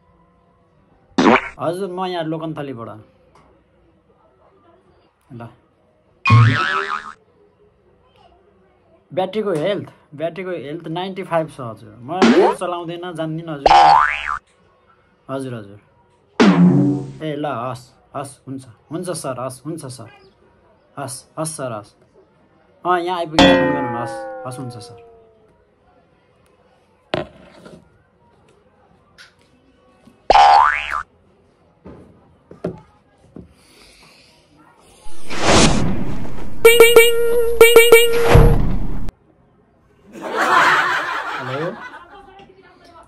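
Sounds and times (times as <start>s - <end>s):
cartoon boing effect: 1.2s - 1.6s, 6.3s - 7.2s, 12.2s - 12.6s, 13.7s - 14.4s, 23.4s - 25.3s, 30.3s - 31.0s, 36.6s - 39.1s
rising glide sound effect: 23.4s - 25.2s.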